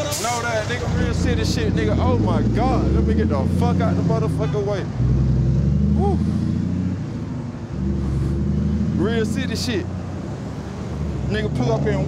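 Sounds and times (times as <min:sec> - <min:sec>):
cars driving past: 0:00.0 - 0:12.0.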